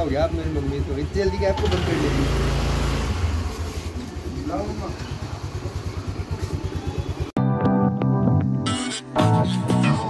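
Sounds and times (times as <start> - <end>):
scooter engine idling: 0.0 - 7.4.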